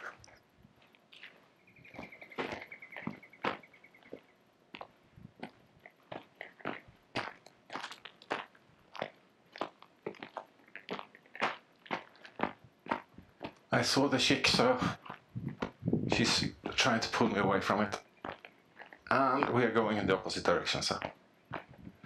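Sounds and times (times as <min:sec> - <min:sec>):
footsteps crunching on gravel: 0:00.0 - 0:22.0
bird trilled call: 0:01.7 - 0:04.2.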